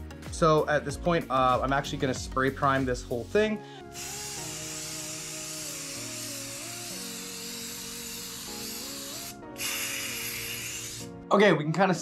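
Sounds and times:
aerosol spray hissing: 2.6s - 11.1s.

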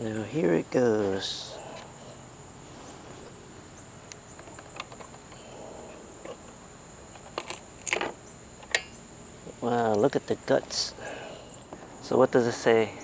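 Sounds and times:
insects buzzing: 0.0s - 13.0s.

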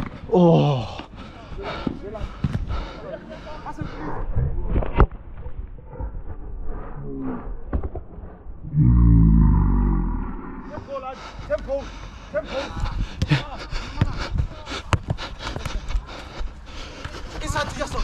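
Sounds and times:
low rumble: 3.8s - 10.8s
running footsteps: 10.6s - 18.0s.

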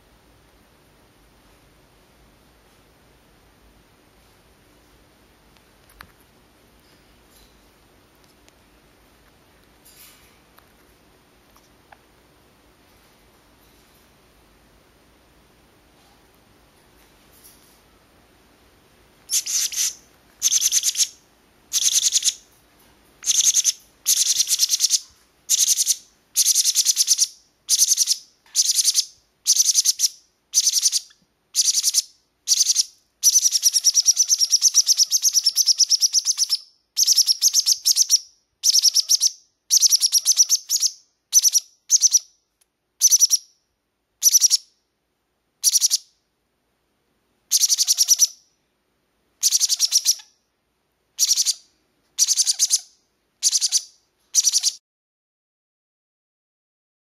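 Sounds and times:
baby parrots begging calls: 19.3s - 22.4s, 23.2s - 42.2s, 43.0s - 43.4s, 44.2s - 44.6s, 45.6s - 46.0s, 47.5s - 48.4s, 49.4s - 50.3s, 51.2s - 51.6s, 52.2s - 54.8s.

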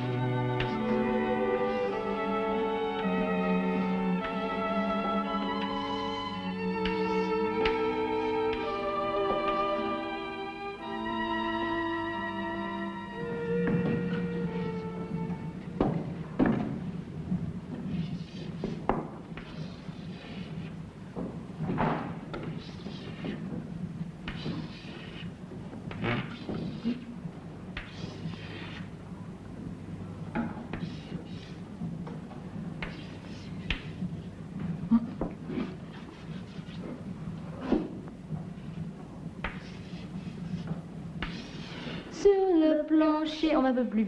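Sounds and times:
steady low hum: 0.0s - 43.2s
chalk scratching on a blackboard: 17.9s - 18.8s, 22.4s - 23.4s, 24.2s - 25.3s, 27.8s - 28.9s, 30.7s - 31.6s, 32.8s - 33.9s, 35.6s - 36.9s, 39.4s - 42.0s.

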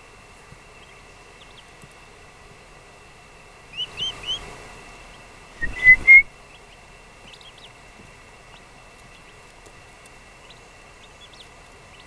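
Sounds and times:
turkey poults peeping: 0.4s - 2.0s, 3.7s - 12.0s.

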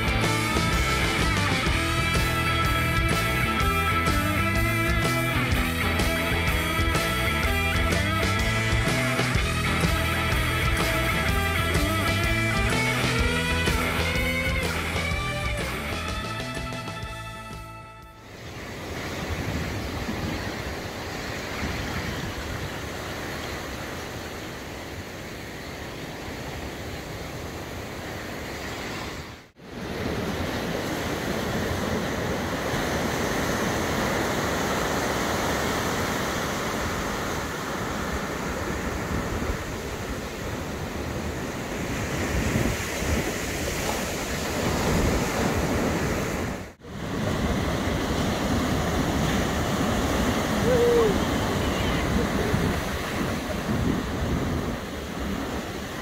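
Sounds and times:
surf breaking on beach: 0.0s - 17.2s, 18.2s - 56.0s
wind on microphone: 38.1s - 56.0s.

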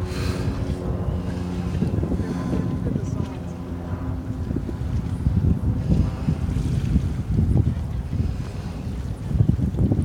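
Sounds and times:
boat engine droning: 0.0s - 10.0s
wind buffeting microphone: 0.0s - 10.0s.

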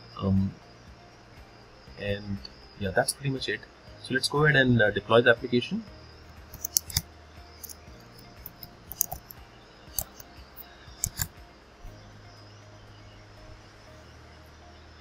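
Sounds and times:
keyboard and mouse clicks: 6.5s - 7.0s, 7.6s - 10.3s, 11.0s - 11.3s.

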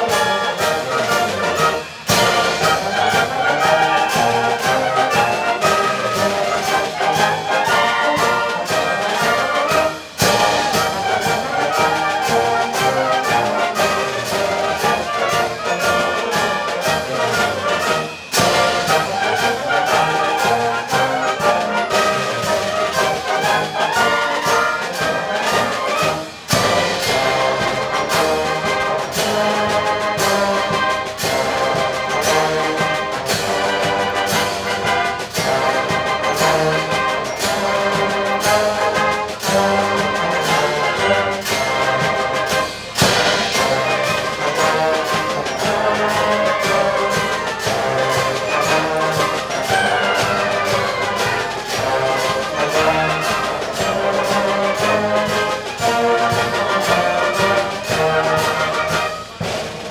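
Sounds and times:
concert band playing a march: 0.0s - 59.9s.

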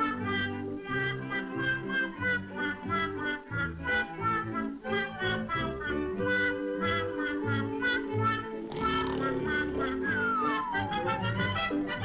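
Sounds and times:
bouncy cartoon band music: 0.0s - 12.0s
whistle-like note sliding down: 9.7s - 11.7s.

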